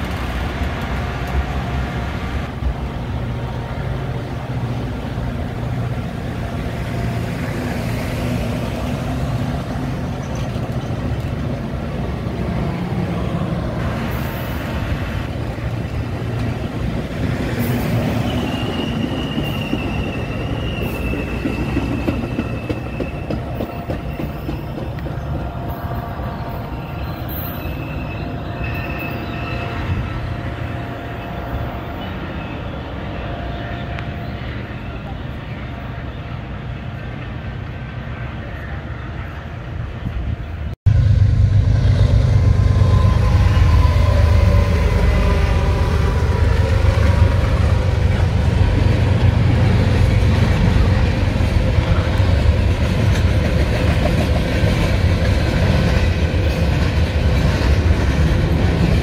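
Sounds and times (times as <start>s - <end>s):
train wheels rumbling on rail: 0.0s - 59.0s
high wheel squeal: 17.6s - 25.0s, 25.7s - 35.2s.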